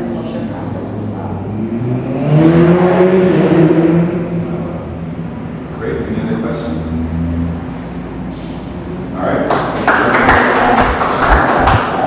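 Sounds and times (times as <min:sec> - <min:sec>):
crowd clapping: 0:09.4 - 0:12.0.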